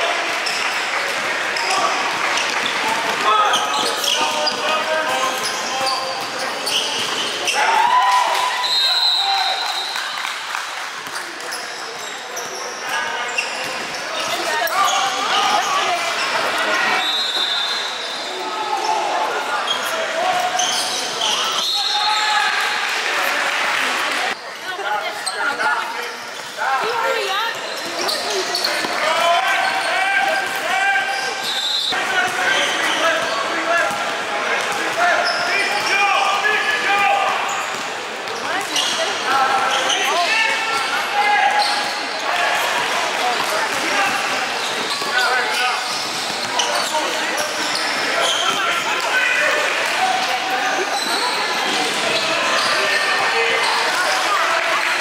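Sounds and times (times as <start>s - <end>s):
voices in large hall: 0.0s - 55.0s.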